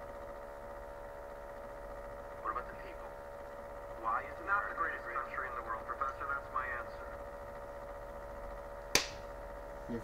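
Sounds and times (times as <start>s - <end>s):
steady hum: 0.0s - 10.0s
sharp click: 8.9s - 9.2s.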